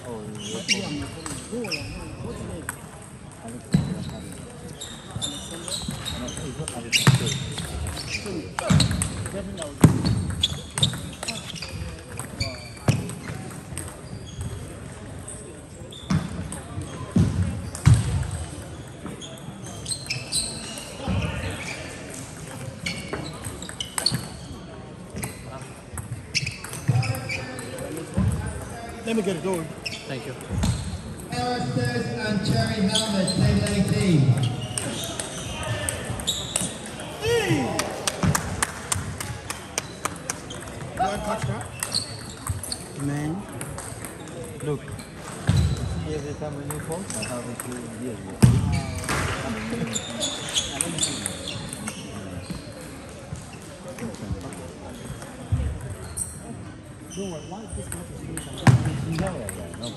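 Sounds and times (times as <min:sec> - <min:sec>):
people talking: 0:00.0 - 0:09.9, 0:31.3 - 0:41.8, 0:53.9 - 0:56.0
table tennis balls clicking: 0:37.8 - 0:45.5.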